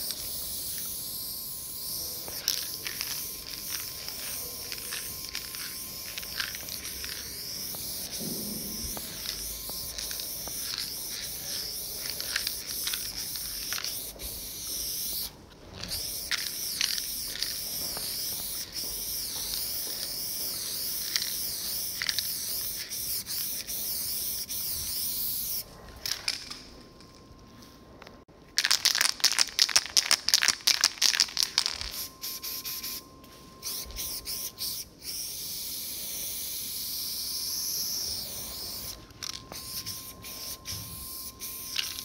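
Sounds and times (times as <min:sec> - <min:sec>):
spray paint can hissing: 0:00.0 - 0:26.5, 0:28.6 - 0:33.0, 0:33.6 - 0:42.0
spray can rattling: 0:00.0 - 0:26.6, 0:28.6 - 0:33.0, 0:33.6 - 0:42.0.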